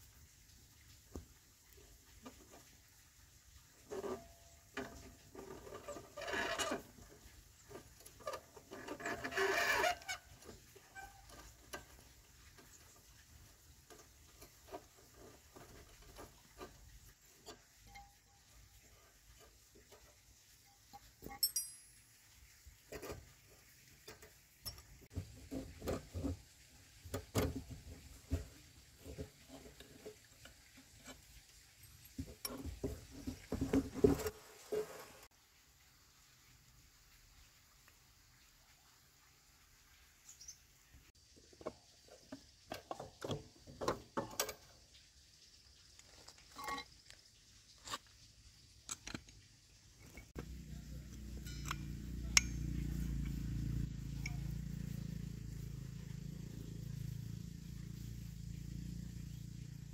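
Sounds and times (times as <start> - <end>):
wrench clicking and scraping on metal: 21.0 - 22.1, 51.1 - 53.4.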